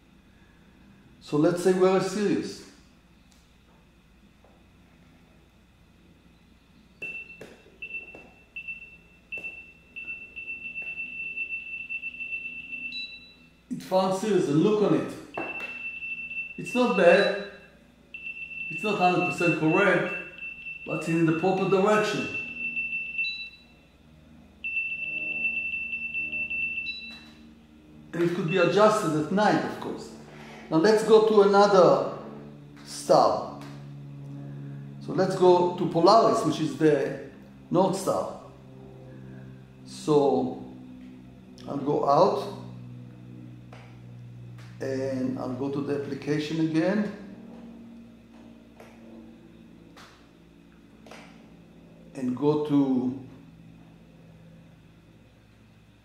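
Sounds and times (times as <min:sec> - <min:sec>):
faint steady hum: 0:00.0 - 0:56.0
high-pitched electronic tone: 0:06.9 - 0:30.2.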